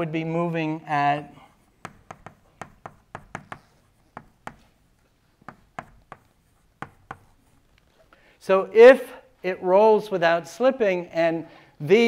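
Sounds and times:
chalk tapping on blackboard: 0:01.6 - 0:07.8.

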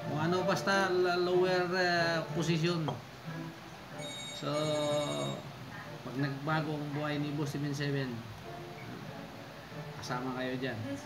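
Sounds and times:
high electronic tone: 0:04.0 - 0:05.6.

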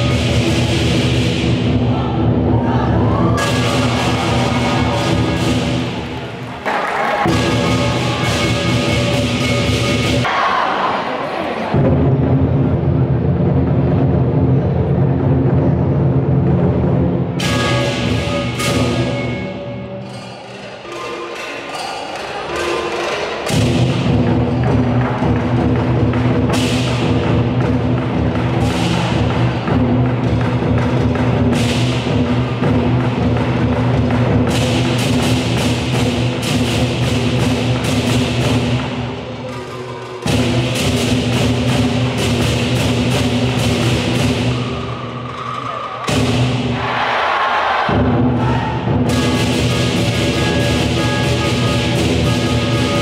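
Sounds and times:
lion dance drum: 0:00.0 - 0:10.4, 0:23.4 - 0:47.1, 0:47.7 - 0:53.0
cymbals clashing: 0:00.0 - 0:10.8, 0:17.4 - 0:53.0
gong: 0:03.4 - 0:06.1, 0:07.3 - 0:10.3, 0:17.4 - 0:21.5, 0:49.0 - 0:53.0
cymbal crash: 0:03.4 - 0:06.2.

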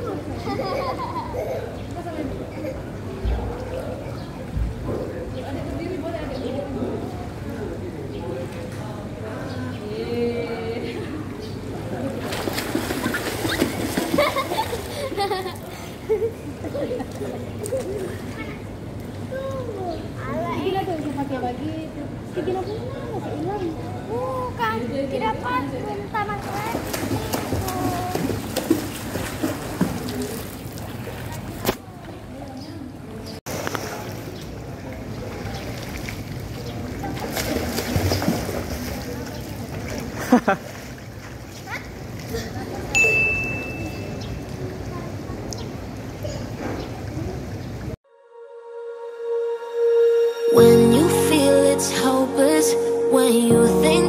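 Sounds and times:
pool water splashing: 0:10.1 - 0:22.6, 0:23.3 - 0:48.0
children's voices: 0:17.6 - 0:21.1, 0:24.0 - 0:28.5, 0:44.5 - 0:47.5, 0:50.6 - 0:54.0.

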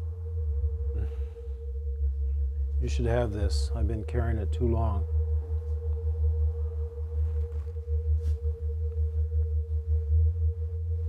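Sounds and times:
loud deep rumble: 0:00.0 - 0:11.0
steady single-pitch drone: 0:00.0 - 0:11.0.

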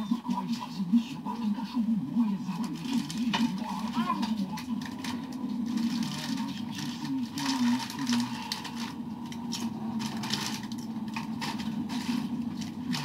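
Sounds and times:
muffled indistinct voices: 0:00.0 - 0:13.0.

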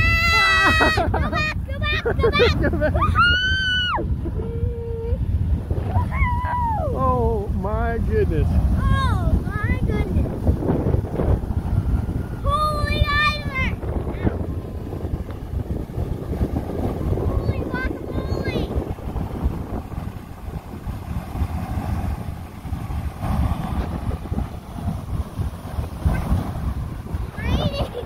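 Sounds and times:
geyser water and steam rushing: 0:00.0 - 0:28.0
wind buffeting microphone: 0:00.0 - 0:28.0.

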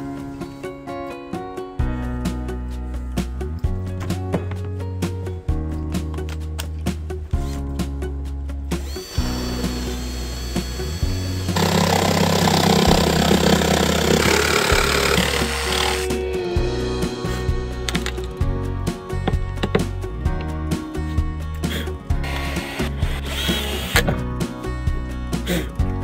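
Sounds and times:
background music with steady beat: 0:00.0 - 0:26.0
jigsaw cutting wooden board: 0:08.8 - 0:16.2, 0:22.2 - 0:24.1
cordless drill whining: 0:08.8 - 0:16.5, 0:22.2 - 0:24.1.

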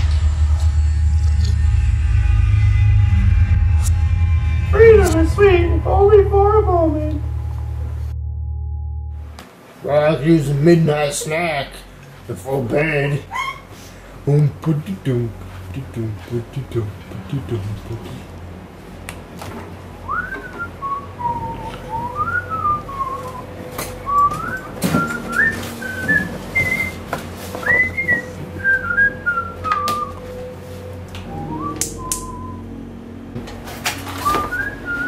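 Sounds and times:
person whistling: 0:20.1 - 0:30.4, 0:31.3 - 0:32.8, 0:34.2 - 0:35.0
refrigerator being opened: 0:33.4 - 0:35.0.

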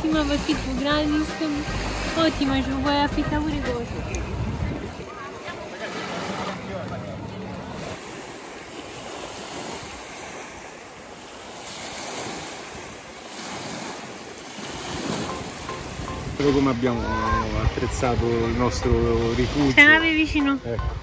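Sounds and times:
wind buffeting microphone: 0:00.0 - 0:05.6, 0:12.3 - 0:21.0
small waves on sandy beach: 0:00.0 - 0:21.0.

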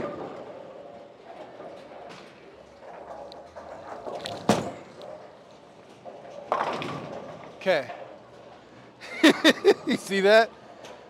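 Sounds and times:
bowling alley din: 0:00.0 - 0:08.5
bowling ball rolling: 0:00.0 - 0:11.0
bowling ball crashing into pins: 0:04.3 - 0:05.0, 0:06.3 - 0:07.6.

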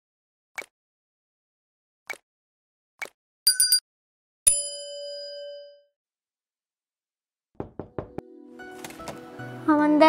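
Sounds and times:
notification bell ding: 0:03.5 - 0:03.8, 0:04.5 - 0:05.8.

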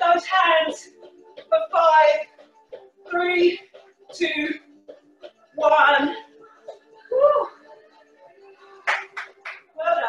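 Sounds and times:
background music: 0:00.0 - 0:10.0
hand claps: 0:08.8 - 0:09.7.

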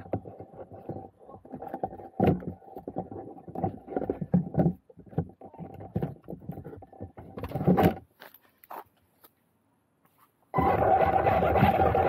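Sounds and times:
plastic knocks and scrapes: 0:00.0 - 0:08.1
toy car clattering on pavement: 0:00.0 - 0:08.8.

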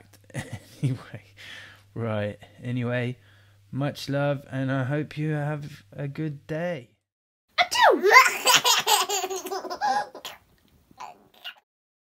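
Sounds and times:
man laughing: 0:00.2 - 0:01.4.

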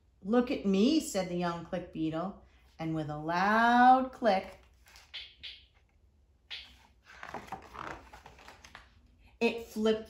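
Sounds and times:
book pages rustling: 0:04.4 - 0:06.0, 0:06.6 - 0:09.4.

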